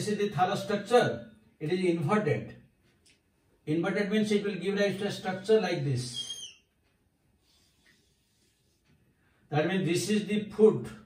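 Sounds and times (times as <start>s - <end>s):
whiteboard marker squeaking: 6.1s - 6.7s.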